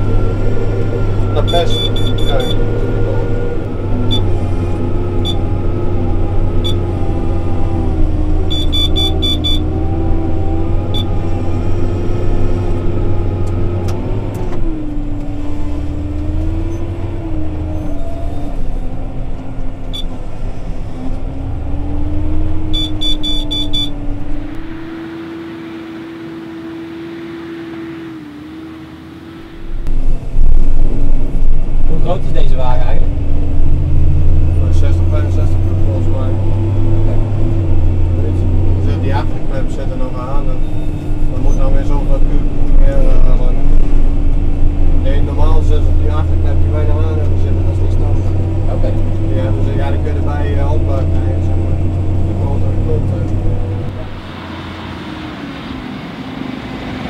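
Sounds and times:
short electronic beeps: 1.4 - 2.7, 4.1 - 4.3, 8.5 - 9.7, 10.9 - 11.2, 22.7 - 24.0.

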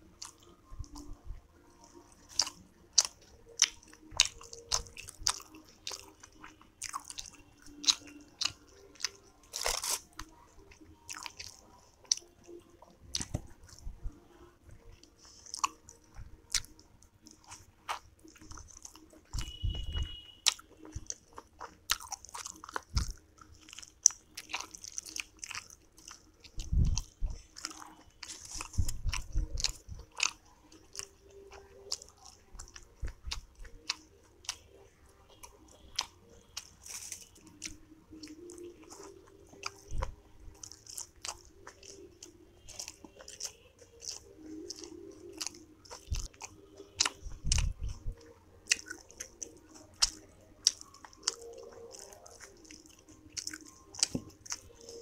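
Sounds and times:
wet chewing: 0.0 - 55.0
mouth clicks and smacks: 14.8 - 55.0.

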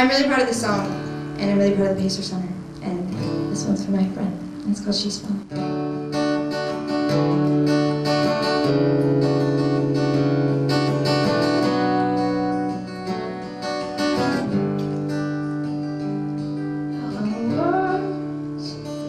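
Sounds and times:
acoustic guitar chords strummed: 0.0 - 19.0.

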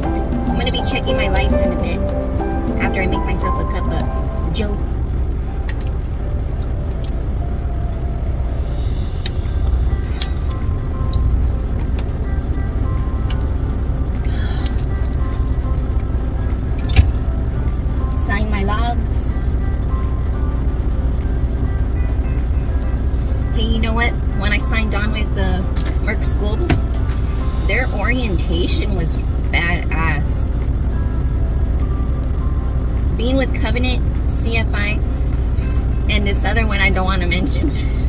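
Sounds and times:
diesel engine idling: 0.0 - 38.0
faint background music: 0.0 - 38.0.

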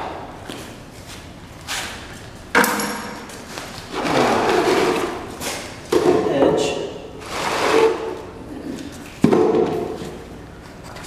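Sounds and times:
panel scraping on concrete: 3.9 - 5.3, 7.2 - 8.3.

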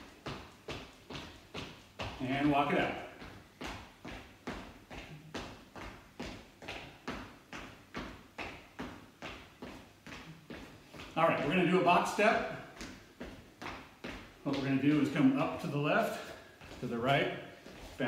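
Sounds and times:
footsteps on hard floor: 0.0 - 18.0.

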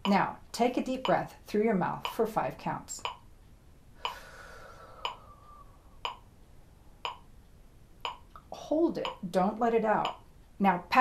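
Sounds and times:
metronome clicking: 1.0 - 1.3, 2.0 - 3.3, 4.0 - 4.2, 5.0 - 5.2, 6.0 - 6.3, 7.0 - 7.3, 8.0 - 10.3.

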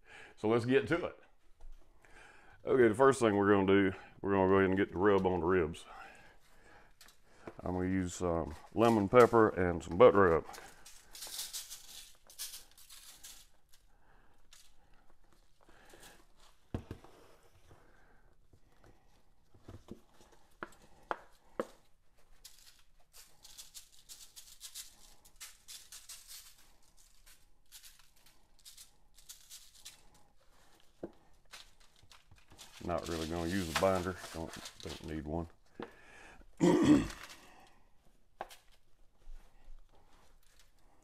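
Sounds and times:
shaker bottle sprinkling rattles: 10.5 - 13.6, 22.3 - 30.9, 31.5 - 35.2.

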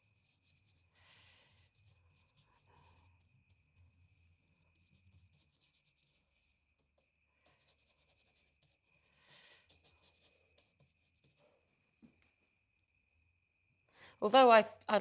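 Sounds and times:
paintbrush strokes on paper: 0.0 - 11.6
faint steady hum: 0.0 - 15.0.

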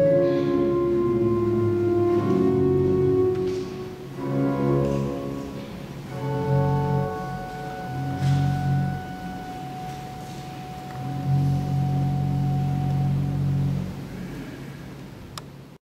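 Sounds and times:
church pipe organ chords: 0.0 - 14.8.

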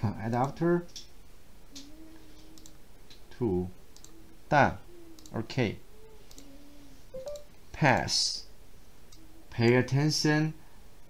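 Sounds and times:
computer mouse clicks: 1.7 - 3.2, 4.0 - 4.2, 5.2 - 5.4, 6.2 - 6.5, 7.2 - 7.5
man talking: 3.3 - 3.8, 4.5 - 5.8, 7.8 - 8.5, 9.5 - 10.6.

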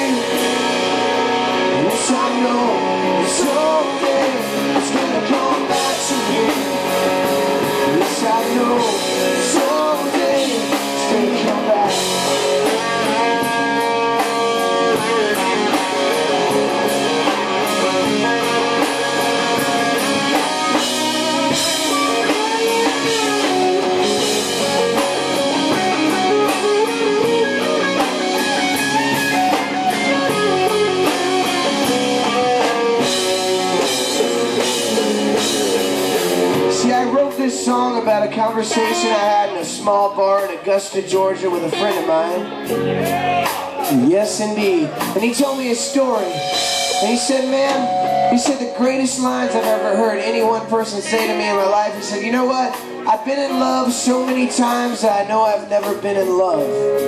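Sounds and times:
drum kit: 0.0 - 57.0
electric guitars: 0.0 - 57.0.

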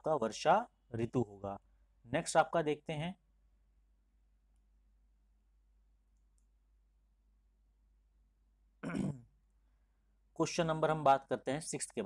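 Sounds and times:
faint click: 6.0 - 6.6.

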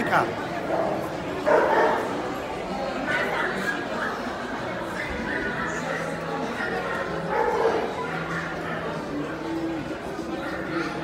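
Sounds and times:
crowd chatter: 0.0 - 11.0
dog barking: 1.4 - 2.1, 7.3 - 7.9.

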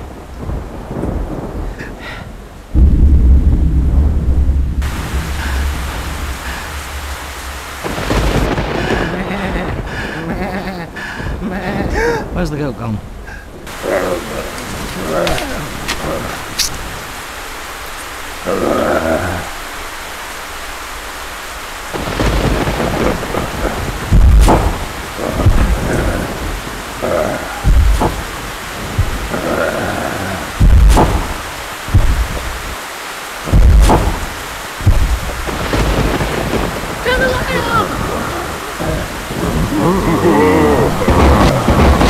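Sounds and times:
thunder booms and cracks: 0.0 - 12.4, 21.9 - 32.8, 33.4 - 42.0
heavy rain: 0.0 - 42.0.

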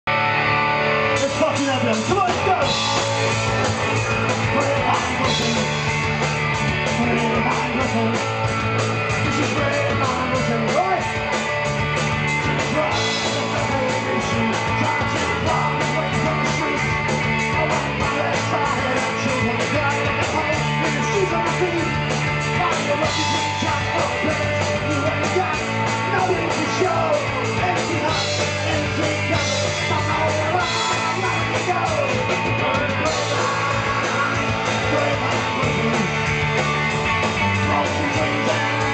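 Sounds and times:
live rock band: 0.1 - 38.9
person singing: 1.1 - 8.5, 9.1 - 11.2, 12.4 - 38.9.

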